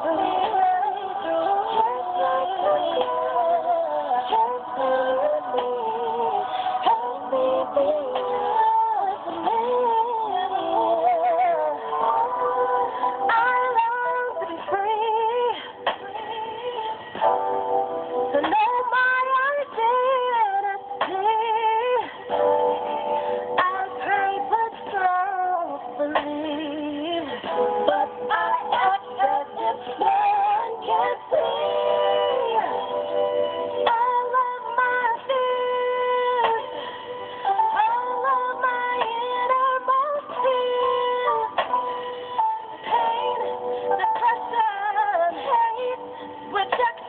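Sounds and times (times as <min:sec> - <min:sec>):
musical accompaniment: 0:00.0 - 0:47.0
woman singing: 0:00.0 - 0:47.0.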